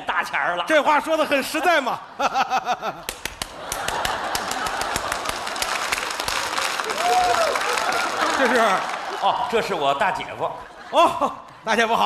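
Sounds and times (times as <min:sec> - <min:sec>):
audience laughing: 0:01.3 - 0:12.0
audience applause: 0:03.1 - 0:10.0.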